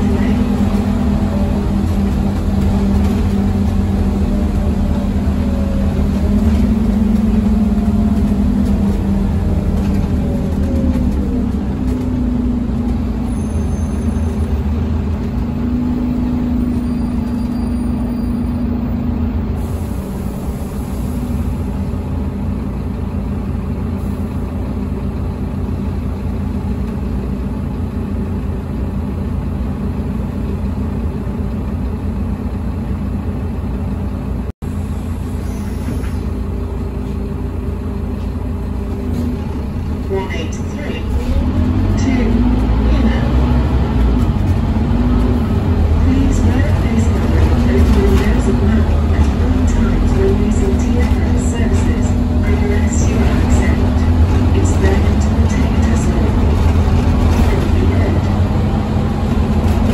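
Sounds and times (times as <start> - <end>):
bus diesel engine hum: 0.0 - 59.9
road noise: 0.0 - 59.9.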